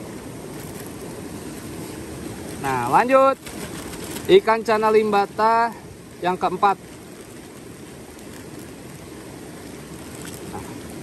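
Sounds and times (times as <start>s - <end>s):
steady rushing noise: 0.0s - 11.0s
faint handling sounds: 0.5s - 5.0s.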